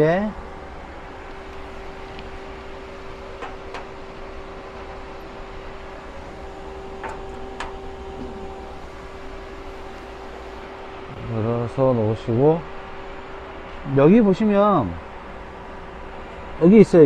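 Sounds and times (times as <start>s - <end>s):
lathe machine hum: 0.0s - 17.0s.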